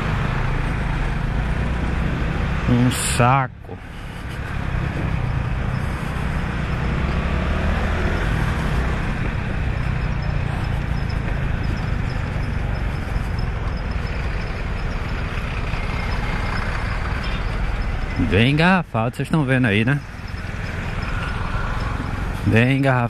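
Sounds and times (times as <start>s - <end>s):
motorcycle engine running: 0.0s - 2.9s, 3.7s - 18.6s
truck and bus engines: 0.0s - 23.0s.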